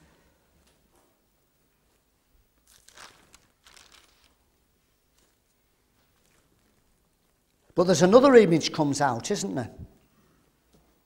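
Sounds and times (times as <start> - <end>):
book pages rustling: 2.6 - 7.6.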